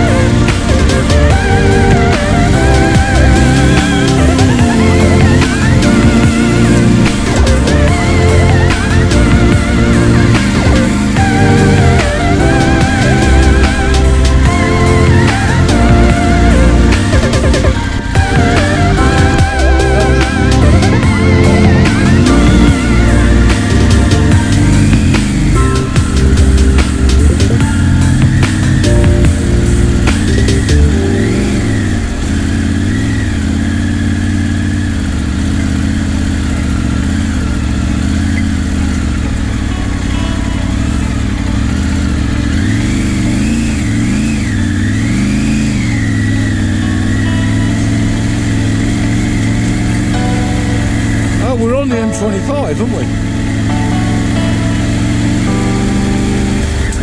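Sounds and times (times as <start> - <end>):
electronic music: 0.0 - 36.0, 38.1 - 57.0
motorcycle engine revving: 0.0 - 57.0.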